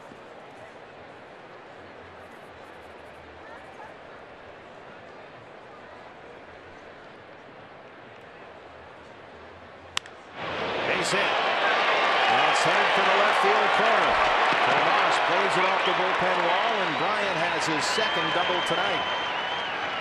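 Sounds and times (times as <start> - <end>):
stadium crowd murmur: 0.0 - 20.0.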